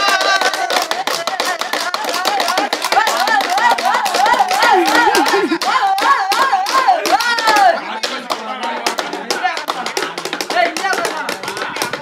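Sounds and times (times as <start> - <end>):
men singing: 0.0 - 12.0
sticks striking in rhythm: 0.0 - 12.0.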